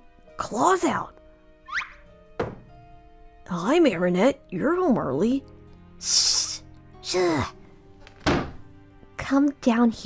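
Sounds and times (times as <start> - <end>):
soft background music: 0.0 - 10.0
single thunk: 2.4 - 2.7, 8.2 - 8.6.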